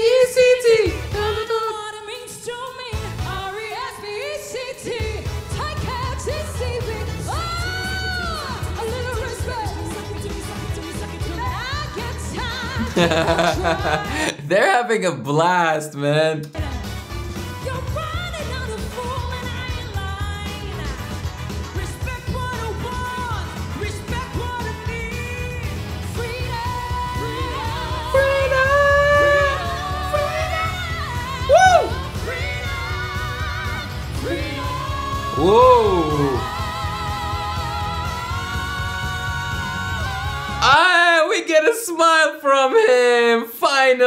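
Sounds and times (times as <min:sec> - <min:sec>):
vocal trio singing pop song: 0:00.0 - 0:14.4, 0:16.4 - 0:41.2
bass guitar: 0:05.1 - 0:14.3, 0:16.6 - 0:40.7
singers in close vocal harmony: 0:26.4 - 0:40.7
backing band playing: 0:26.8 - 0:32.5.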